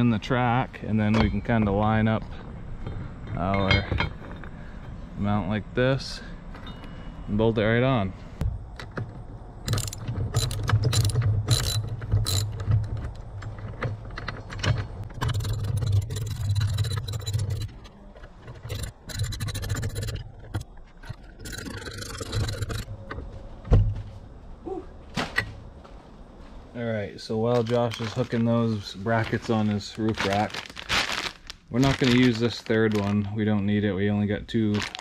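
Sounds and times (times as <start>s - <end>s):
ratchet wrench clicking: 9.7s - 12.6s.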